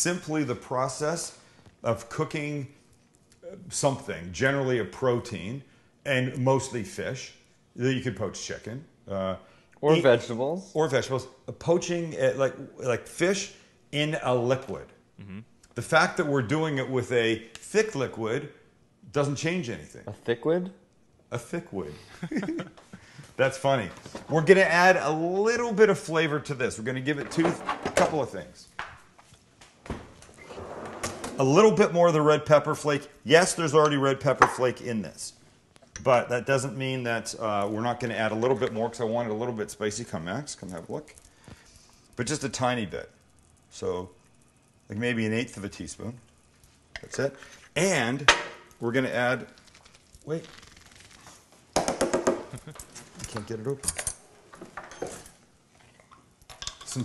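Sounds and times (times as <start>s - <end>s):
drawer sliding open: 30.4s - 31.4s.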